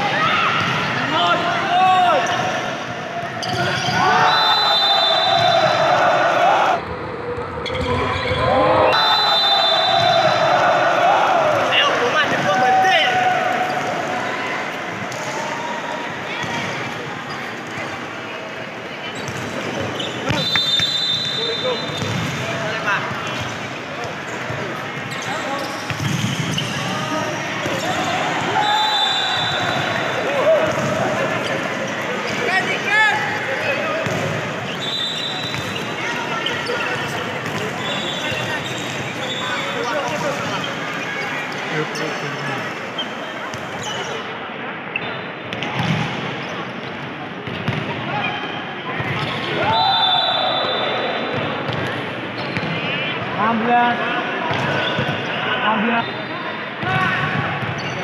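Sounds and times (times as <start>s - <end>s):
players calling: 0.0s - 6.8s, 8.2s - 16.3s, 19.4s - 44.3s
sneakers squeaking on floor: 3.3s - 5.8s, 19.1s - 50.9s, 52.4s - 53.2s, 54.5s - 55.4s, 57.3s - 58.0s.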